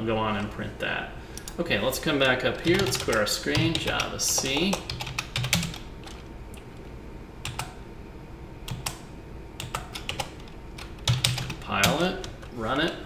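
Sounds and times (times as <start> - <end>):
computer keyboard typing: 2.6 - 6.2, 7.4 - 7.8, 8.7 - 9.0, 9.6 - 12.5.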